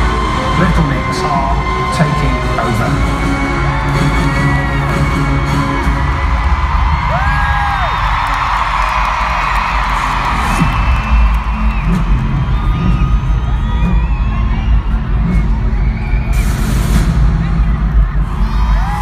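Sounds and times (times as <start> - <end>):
bass-heavy pop music: 0.0 - 19.0
crowd screaming and cheering: 0.0 - 19.0.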